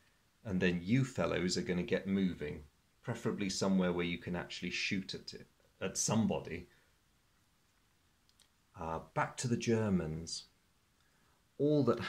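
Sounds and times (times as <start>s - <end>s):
man speaking: 0.4s - 6.8s, 8.7s - 10.6s, 11.6s - 12.0s
faint quick clicks: 7.6s - 8.6s.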